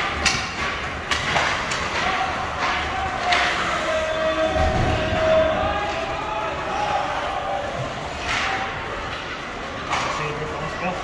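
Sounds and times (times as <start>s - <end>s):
skates and sticks on ice: 0.0s - 5.2s.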